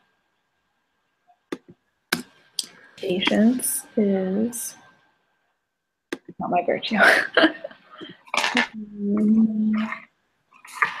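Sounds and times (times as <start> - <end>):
person humming low: 8.8 - 10.0.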